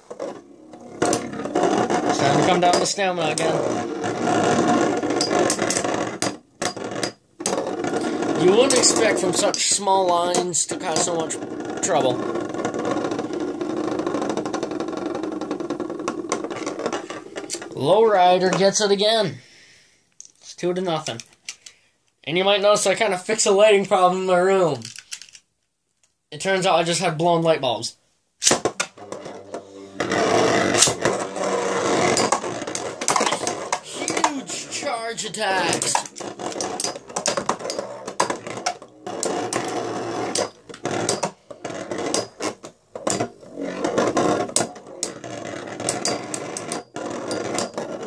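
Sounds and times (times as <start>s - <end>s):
spinning tops whirring: 0.2s - 17.7s, 28.8s - 48.0s
rapid rattle of rubbing tops: 1.0s - 18.8s, 28.7s - 48.0s.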